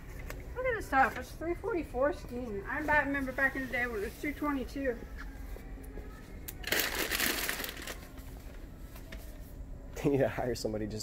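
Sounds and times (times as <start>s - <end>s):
paper bands crinkling: 6.6s - 8.6s.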